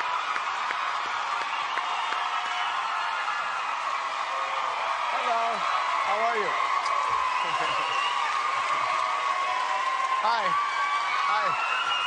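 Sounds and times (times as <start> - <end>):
audience cheering and screaming: 0.0 - 12.0
people clapping: 0.0 - 12.0
individual whoops: 5.5 - 12.0.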